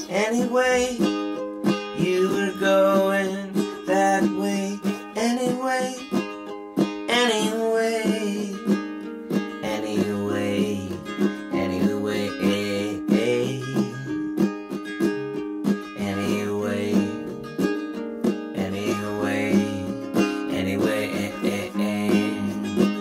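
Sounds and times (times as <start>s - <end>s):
acoustic guitar melody: 0.0s - 23.0s.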